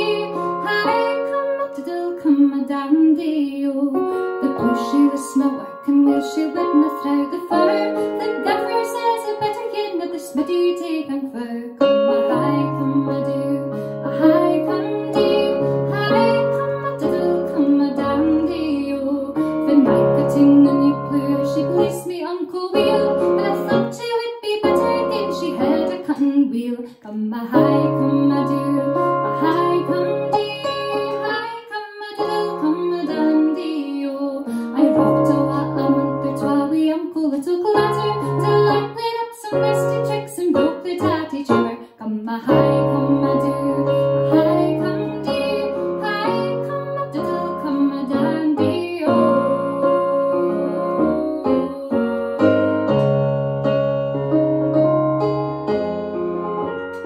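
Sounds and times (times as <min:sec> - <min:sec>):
electric keyboard chords: 0:00.0 - 0:26.4, 0:27.6 - 0:57.0
woman singing: 0:00.0 - 0:52.5.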